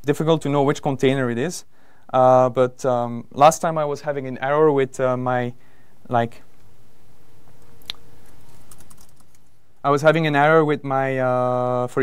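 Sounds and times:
laptop keyboard typing: 8.3 - 9.5.

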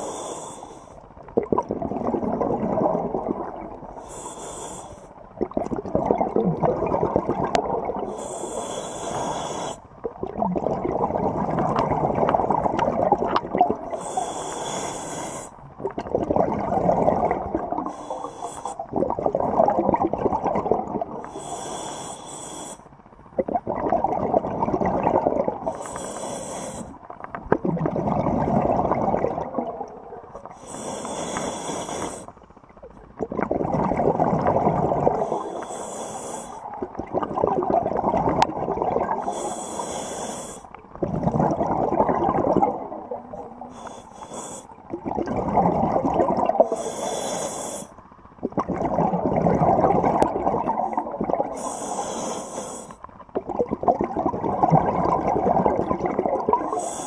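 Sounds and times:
regulator hissing inhale: 0.0 - 1.0, 3.9 - 5.2, 8.1 - 9.8, 13.9 - 15.6, 17.8 - 18.9, 21.2 - 22.9, 25.7 - 27.0, 30.5 - 32.4, 35.2 - 36.8, 39.2 - 40.8, 43.5 - 44.8, 46.6 - 48.0, 51.5 - 53.1, 56.7 - 57.0
exhaled air bubbling: 0.0 - 57.0.

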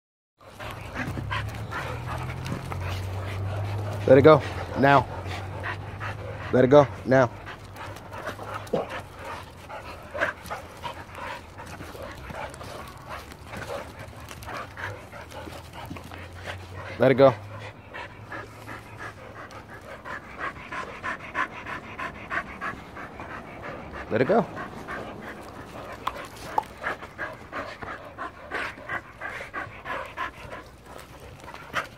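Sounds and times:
dog panting: 0.4 - 31.9.

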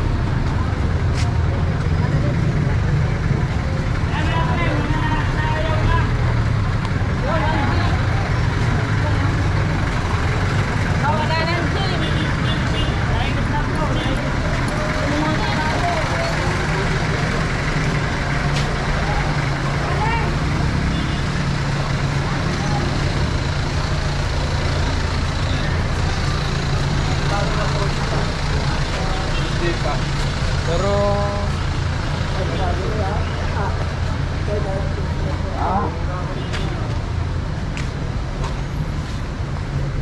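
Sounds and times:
passers-by talking: 0.0 - 40.0
street traffic noise: 0.0 - 40.0
vehicle engine humming: 0.0 - 40.0.

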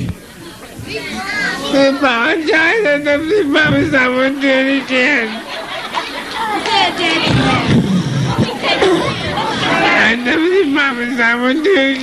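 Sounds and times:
crowd voices calling out: 0.0 - 12.0.

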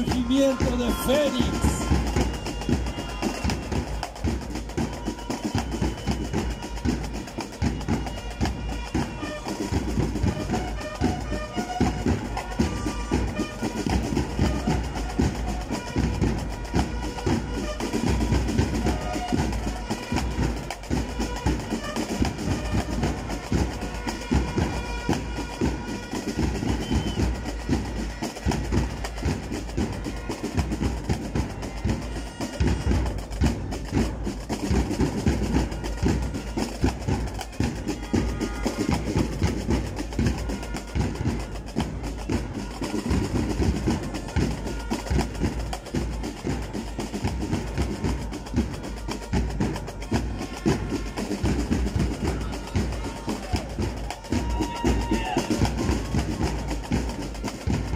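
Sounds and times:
marching band music: 0.0 - 57.9
snare and bass drums: 0.0 - 57.9.

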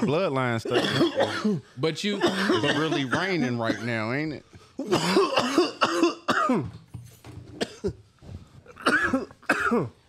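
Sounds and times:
man coughing: 0.0 - 6.8, 7.6 - 8.0, 8.7 - 10.0.

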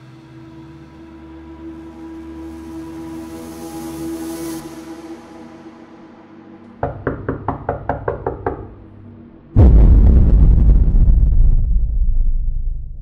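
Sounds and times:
sharp knocks: 6.8 - 8.8
low rumble: 9.6 - 13.0.

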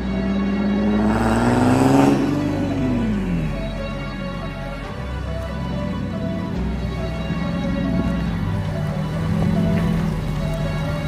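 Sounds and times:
background music: 0.0 - 11.0
car engine revving: 0.0 - 11.0.

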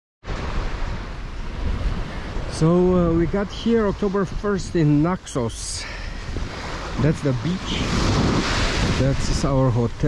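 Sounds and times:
waves washing onto beach: 0.2 - 10.0
wind buffeting microphone: 0.3 - 10.0.

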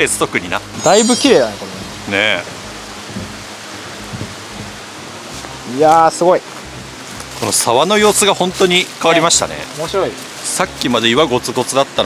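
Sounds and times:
stream running over rock: 0.0 - 12.0.

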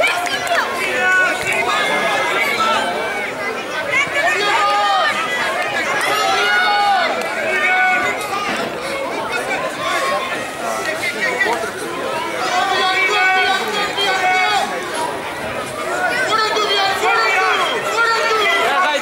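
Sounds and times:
crowd shouting and calling: 0.0 - 19.0.

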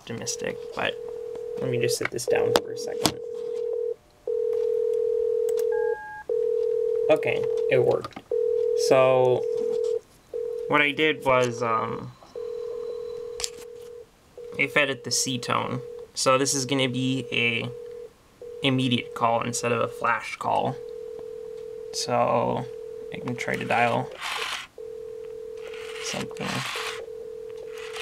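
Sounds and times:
phone ringback tone: 0.8 - 16.1, 17.0 - 20.0, 20.8 - 28.0.

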